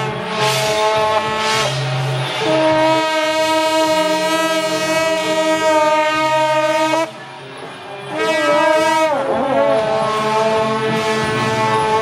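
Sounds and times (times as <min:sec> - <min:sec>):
double-reed horns holding notes: 0:00.0 - 0:12.0.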